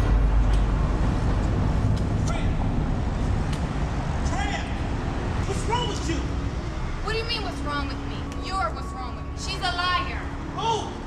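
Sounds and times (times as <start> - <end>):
low rumble of traffic: 0.0 - 11.0.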